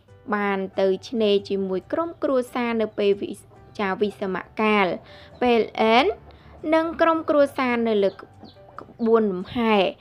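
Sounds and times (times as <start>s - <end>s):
woman narrating: 0.2s - 10.0s.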